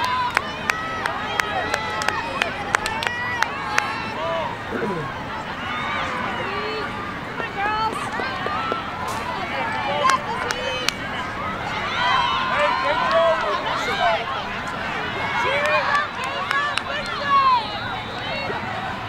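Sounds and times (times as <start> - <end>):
many voices calling out: 0.0 - 19.0.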